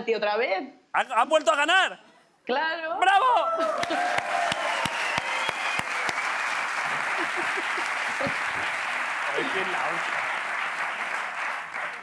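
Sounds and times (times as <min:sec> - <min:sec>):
audience applauding: 0:03.6 - 0:12.0.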